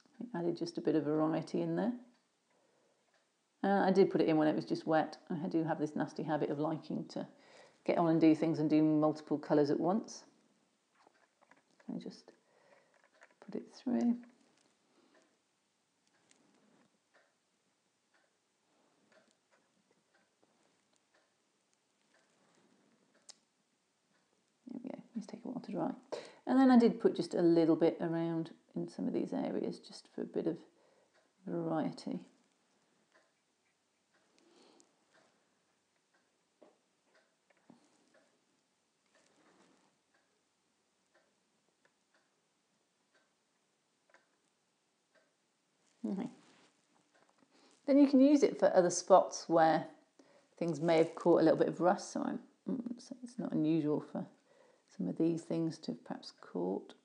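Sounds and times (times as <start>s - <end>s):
faint small ticks: 10.4s - 15.4s, 16.0s - 17.4s, 18.1s - 26.4s, 32.1s - 40.4s, 41.1s - 42.4s, 43.1s - 47.9s.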